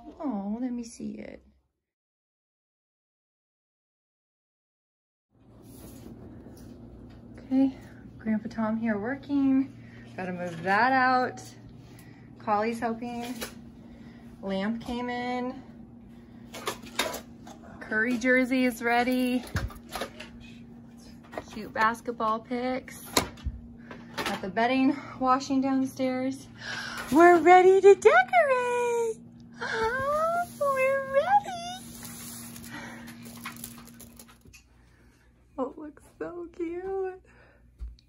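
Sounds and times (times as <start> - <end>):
woman speaking: 0.0 - 1.4, 7.4 - 11.6, 12.4 - 13.4, 14.4 - 15.7, 17.8 - 19.5, 21.4 - 23.2, 24.3 - 32.0, 35.6 - 37.3
faint steady hum: 5.4 - 38.0.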